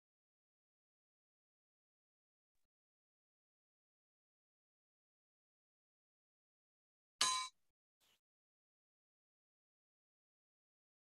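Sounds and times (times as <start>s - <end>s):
small bell ding: 7.2s - 7.6s.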